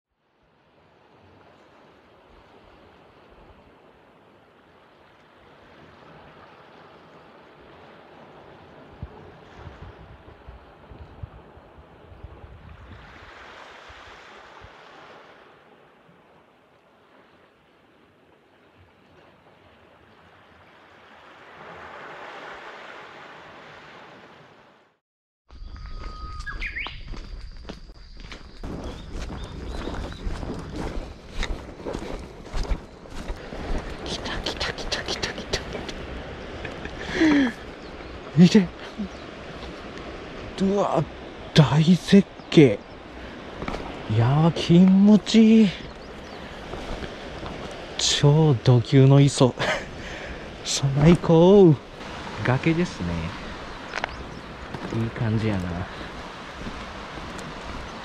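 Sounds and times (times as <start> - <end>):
wind buffeting microphone: 8.6 - 14.8, 25.8 - 41.6, 42.2 - 48.0, 49.5 - 58.0
surf washing against rocks: 12.2 - 18.0, 19.1 - 24.8, 30.2 - 58.0
footsteps on forest path: 25.5 - 34.4, 43.0 - 45.0, 45.6 - 47.9, 53.3 - 58.0
birds calling: 25.6 - 48.0, 48.7 - 58.0
wave breaking: 43.2 - 58.0.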